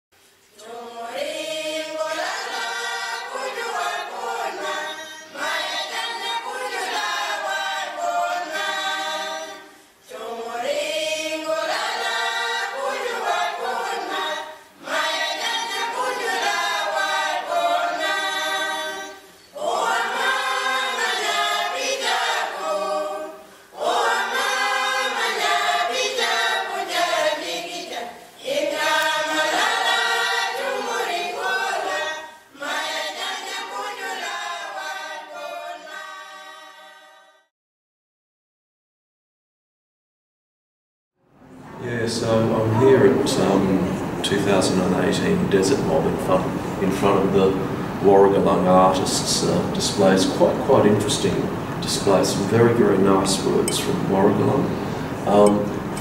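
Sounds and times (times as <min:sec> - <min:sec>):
choir singing unaccompanied: 0:00.5 - 0:37.5, 0:41.7 - 0:56.0.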